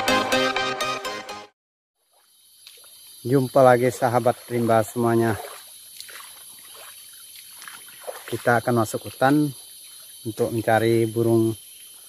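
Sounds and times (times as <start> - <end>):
shallow stream trickling: 2.0 - 12.0
high-pitched insect drone: 2.1 - 12.0.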